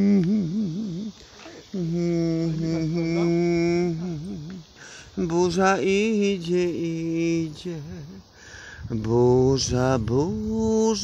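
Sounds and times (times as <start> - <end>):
person humming: 0.0 - 8.3.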